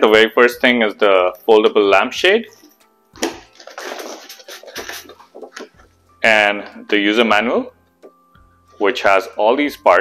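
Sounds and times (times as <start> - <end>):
plastic wrapping and paper rustling: 2.5 - 7.0.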